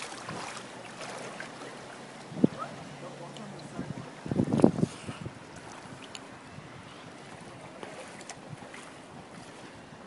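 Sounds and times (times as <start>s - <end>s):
floodwater flowing: 0.0s - 10.0s
small water splashes: 0.0s - 10.0s.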